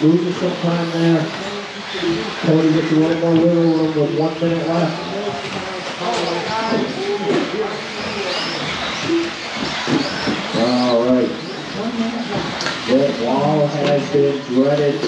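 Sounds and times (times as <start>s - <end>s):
rc car motors whining: 0.0s - 15.0s
voices: 0.0s - 15.0s.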